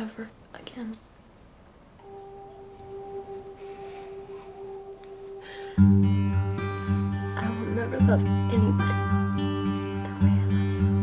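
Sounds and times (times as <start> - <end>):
faint hiss: 0.0 - 11.0
held musical note drone: 2.0 - 11.0.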